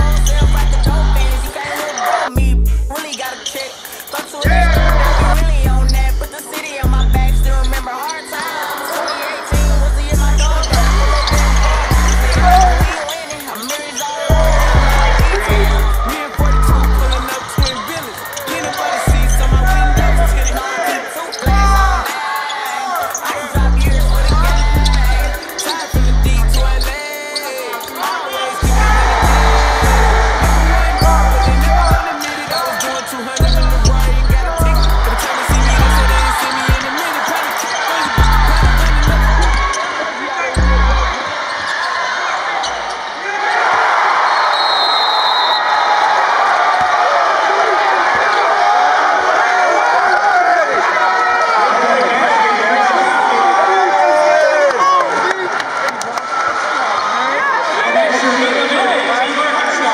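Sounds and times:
hip hop music with heavy bass: 0.0s - 41.3s
crowd cheering and shouting: 0.0s - 59.9s.

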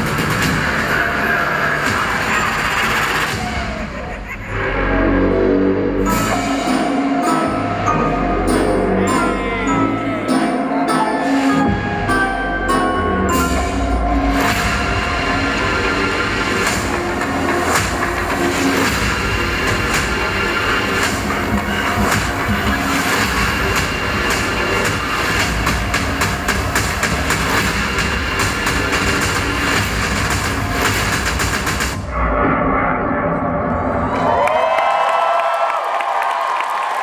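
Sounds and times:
dense music with percussive hits: 0.0s - 4.0s, 5.4s - 9.4s, 10.2s - 32.2s.

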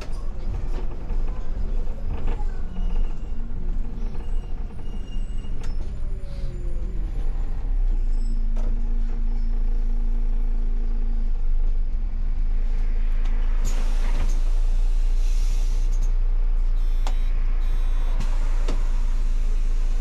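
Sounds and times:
bus engine idling: 0.0s - 20.0s.

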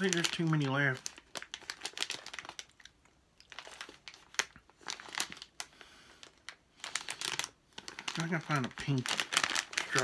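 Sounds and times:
candy bag crinkling: 0.0s - 10.0s.

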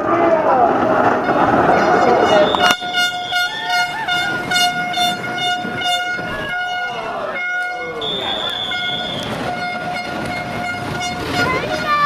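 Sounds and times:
rushing noise: 0.0s - 12.0s
horn long steady note: 1.1s - 12.0s.

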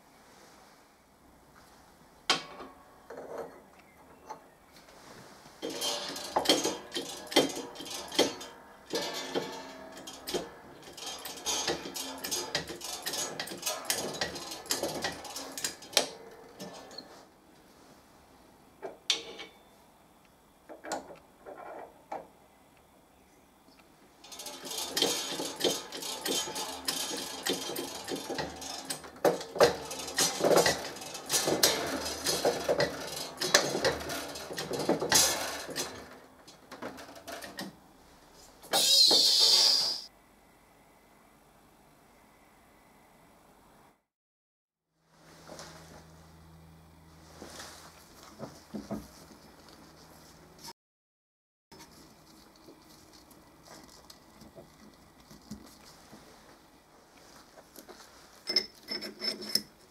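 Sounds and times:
hydraulic press metallic clicking: 5.6s - 17.1s, 24.2s - 37.6s.

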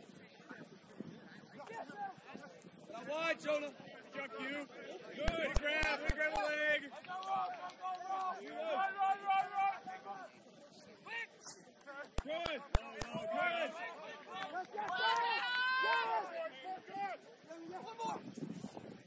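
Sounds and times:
voices shouting: 3.0s - 10.4s, 12.0s - 18.2s.

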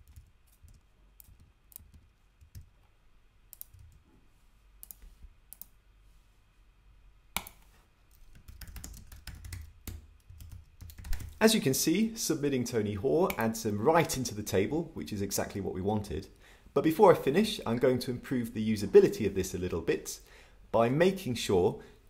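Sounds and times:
computer keyboard typing: 0.0s - 2.7s, 3.5s - 4.0s, 7.4s - 11.4s.

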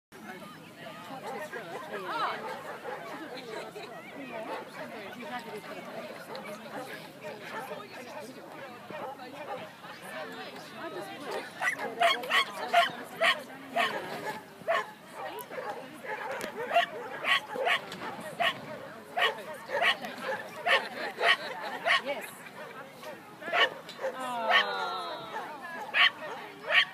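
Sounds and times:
people talking: 0.2s - 26.9s
dog barking: 11.6s - 17.8s, 19.2s - 22.0s, 23.5s - 24.6s, 25.9s - 26.9s.

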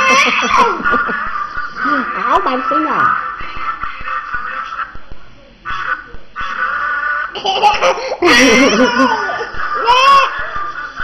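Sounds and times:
toddler laughing: 0.0s - 1.4s, 7.4s - 11.0s.

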